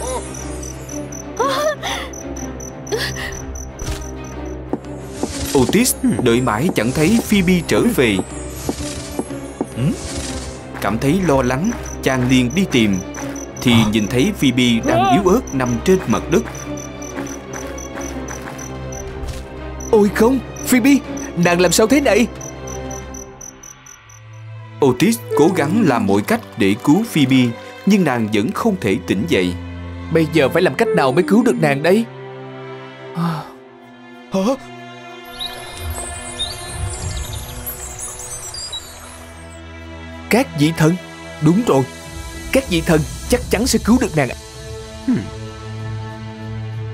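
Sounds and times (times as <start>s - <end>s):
crickets chirping: 0.0s - 5.4s, 11.0s - 24.6s
soft background music: 0.0s - 46.9s
woman moaning: 1.4s - 2.1s, 14.9s - 15.3s.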